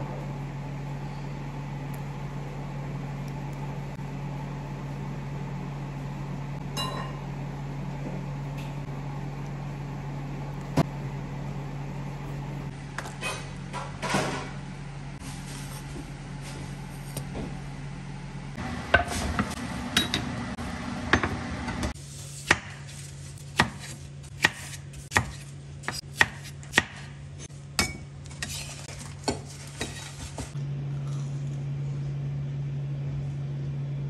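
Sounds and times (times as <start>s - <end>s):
steady low hum: 0.0s - 34.0s
knife chopping on wooden board: 22.4s - 22.8s, 23.5s - 27.2s.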